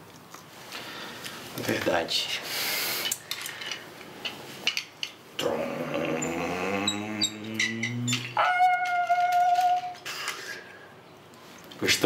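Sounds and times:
man making car noises: 0:05.4 - 0:08.5.

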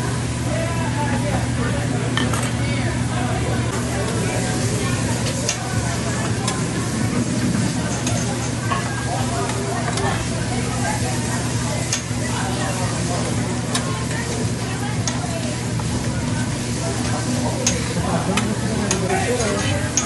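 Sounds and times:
rice sizzling on a griddle: 0:00.1 - 0:20.0.

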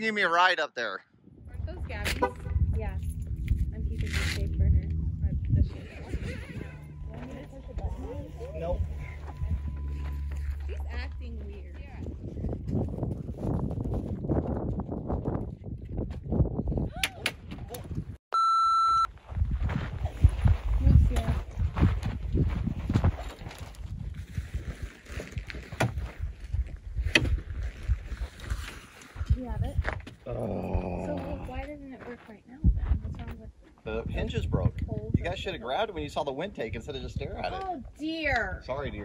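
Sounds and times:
wind buffeting microphone: 0:01.1 - 0:18.2, 0:19.2 - 0:39.0
electronic beep: 0:05.9 - 0:11.4, 0:18.3 - 0:19.1.

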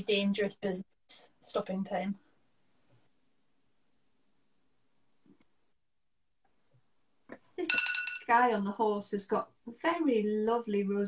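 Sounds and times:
woman speaking: 0:00.0 - 0:02.2, 0:07.6 - 0:11.0
phone timer alarm ringing: 0:07.7 - 0:08.3.

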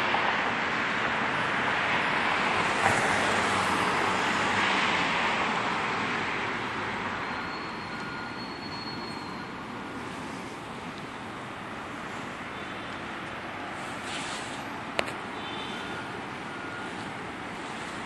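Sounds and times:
passing vehicles rushing: 0:00.0 - 0:18.0.

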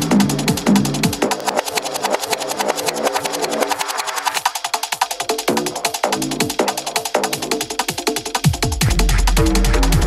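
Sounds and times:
electronic dance music: 0:00.0 - 0:10.0
hi-hat ticks: 0:00.0 - 0:10.0.

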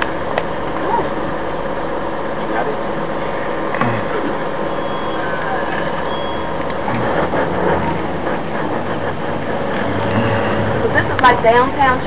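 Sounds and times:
bus engine running: 0:00.0 - 0:12.0
road noise: 0:00.0 - 0:12.0.

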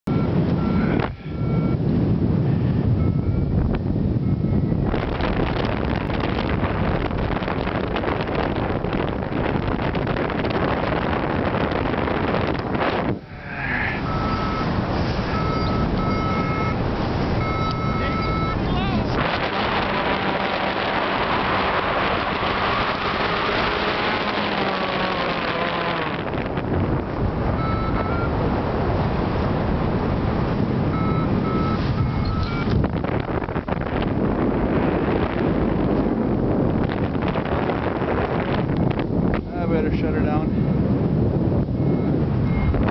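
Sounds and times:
wind rushing over microphone: 0:00.0 - 0:42.9
short electronic beeps: 0:00.1 - 0:01.8, 0:03.0 - 0:04.7, 0:14.0 - 0:14.7, 0:15.3 - 0:16.8, 0:17.4 - 0:18.6, 0:27.6 - 0:28.3, 0:30.9 - 0:32.8, 0:41.8 - 0:42.9.

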